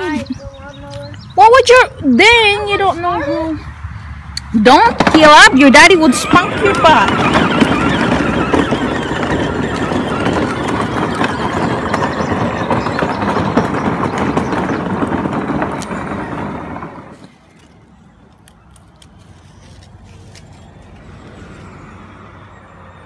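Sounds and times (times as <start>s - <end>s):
riding lawn mower running: 4.7s - 17.7s.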